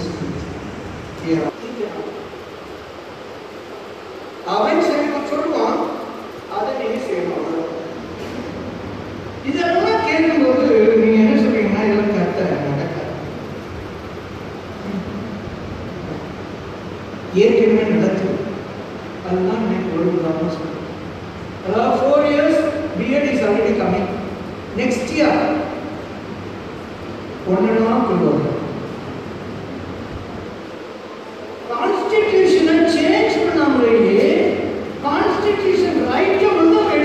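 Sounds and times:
rushing room noise: 0.0 - 37.0.

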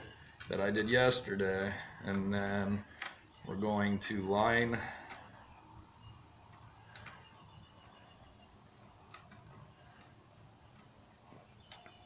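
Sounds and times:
faint clicks: 6.5 - 7.3, 9.1 - 11.0, 11.6 - 12.0.

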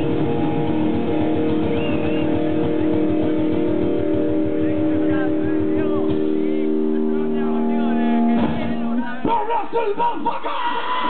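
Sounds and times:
distorted electric guitar chords: 0.0 - 9.3
fast driving drums: 0.0 - 11.0.

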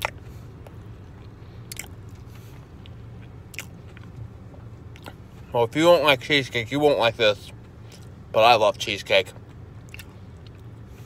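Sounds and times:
mouth clicks and smacks: 0.0 - 4.2, 4.9 - 5.2, 9.4 - 10.7
person chewing: 0.0 - 4.3, 4.9 - 5.4, 9.4 - 10.8.

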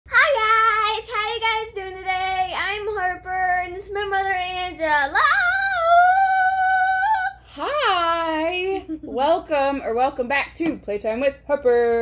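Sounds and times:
girl singing: 0.1 - 7.7.

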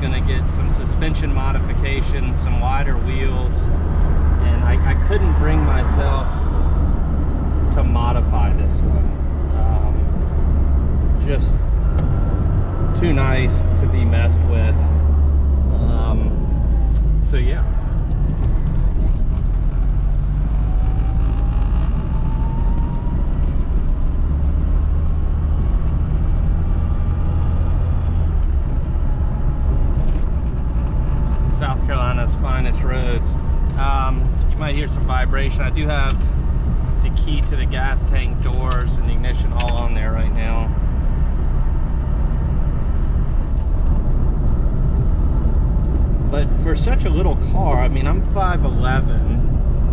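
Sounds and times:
car engine drone: 0.0 - 49.9
road noise: 0.0 - 49.9.

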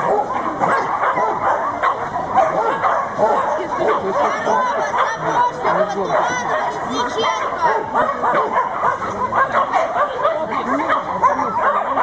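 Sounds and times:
dog barking and yipping: 0.0 - 12.0.

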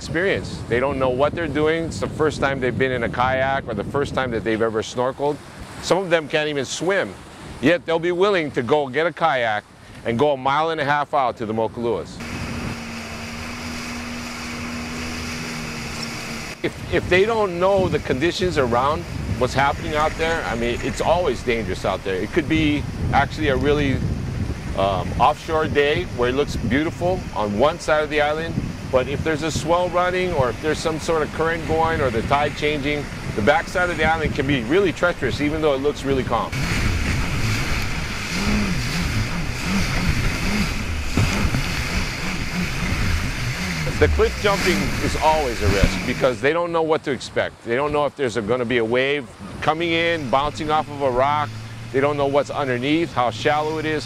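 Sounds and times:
wind: 0.0 - 54.0
jet ski engine droning: 11.7 - 46.7, 47.6 - 54.0
water spray rushing: 12.2 - 46.6, 49.0 - 54.0.

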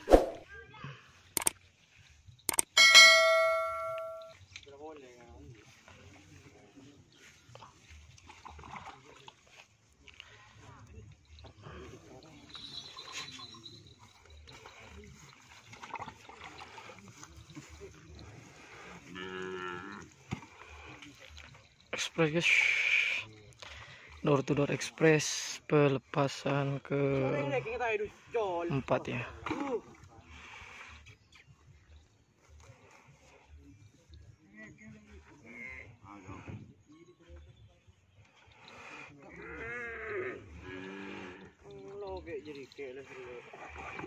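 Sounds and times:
faint cattle movement: 0.0 - 44.0
bright bell chime: 2.7 - 4.4, 12.2 - 15.0
bull mooing: 19.1 - 20.1.

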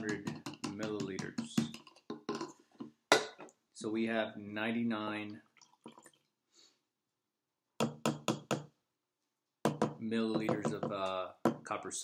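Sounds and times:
plastic cylinder knocking on beaker: 9.6 - 11.6.

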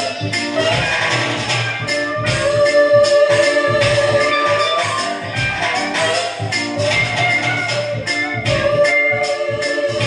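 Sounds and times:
electronic keyboard pop music: 0.0 - 10.0.

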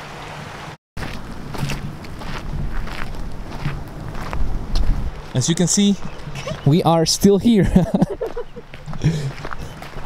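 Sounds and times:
river water running: 0.0 - 7.2
footsteps on gravel: 1.0 - 6.8, 7.8 - 10.0
wind buffeting microphone: 1.0 - 10.0.

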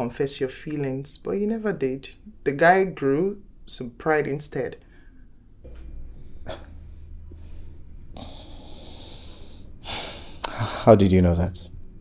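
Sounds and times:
room hum: 0.0 - 12.0
breathy puff: 6.1 - 10.9.

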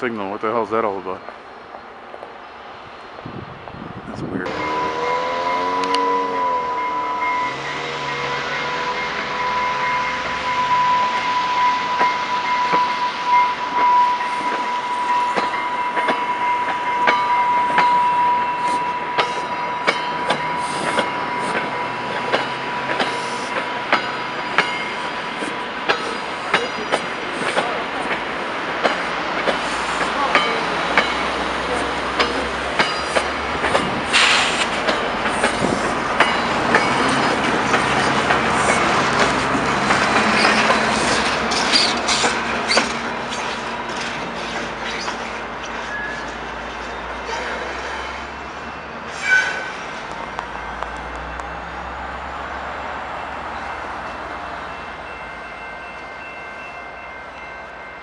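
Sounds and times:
steady high tone: 4.4 - 25.1
train wheels clicking over rail joints: 13.7 - 51.6.

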